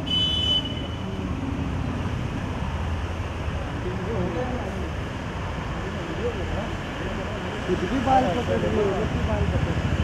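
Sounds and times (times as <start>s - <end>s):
high-pitched vehicle horn beep: 0.0s - 1.0s
street traffic rumble: 0.0s - 10.0s.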